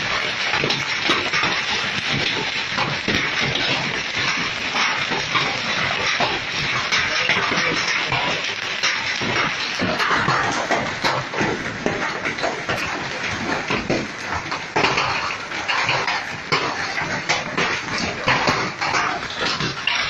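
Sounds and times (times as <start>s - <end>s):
hailstones clattering: 0.0s - 20.0s.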